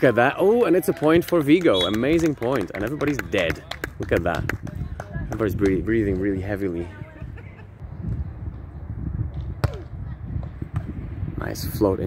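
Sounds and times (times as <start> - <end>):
wind rumble on microphone: 3.2 - 12.0.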